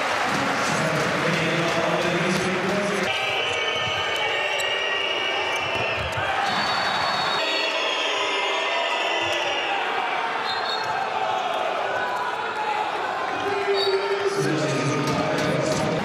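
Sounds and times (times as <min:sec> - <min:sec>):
crowd noise: 0:00.0 - 0:16.0.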